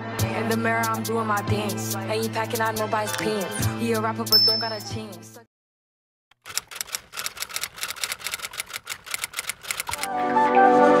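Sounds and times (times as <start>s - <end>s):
typewriter keys clacking: 6.4s - 10.1s.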